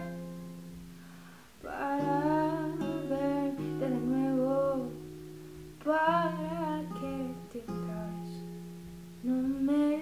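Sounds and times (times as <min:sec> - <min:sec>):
acoustic guitar chords: 0:00.0 - 0:10.0
woman singing wordlessly: 0:01.6 - 0:05.2, 0:05.8 - 0:08.6, 0:09.2 - 0:10.0.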